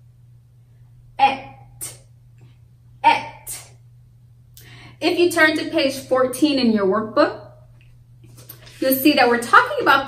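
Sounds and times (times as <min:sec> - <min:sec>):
woman sounding out a consonant: 0:03.0 - 0:03.7.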